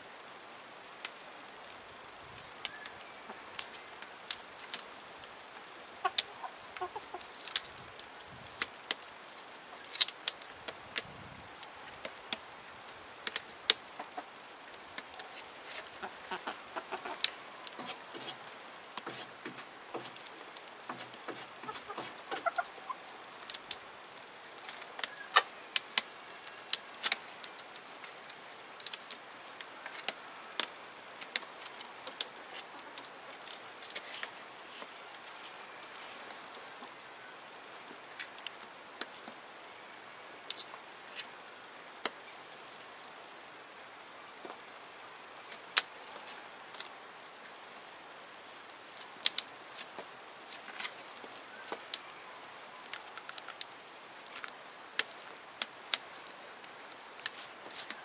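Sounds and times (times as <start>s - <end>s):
chickens pecking on wood: 1.0s - 42.8s, 48.5s - 52.2s, 52.8s - 58.0s
chickens clucking: 5.5s - 7.6s, 13.8s - 14.4s, 15.2s - 23.5s, 25.0s - 25.5s.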